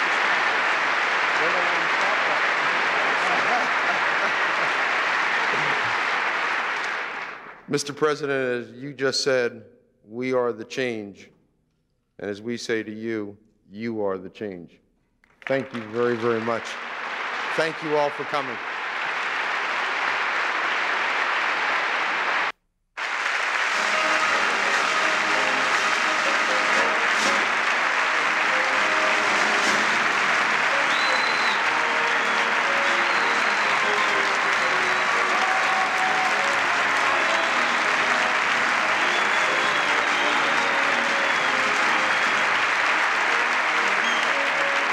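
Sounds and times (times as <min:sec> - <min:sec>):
large audience applauding: 0:00.0 - 0:07.7, 0:15.3 - 0:44.9
faint military band playing: 0:23.6 - 0:44.9.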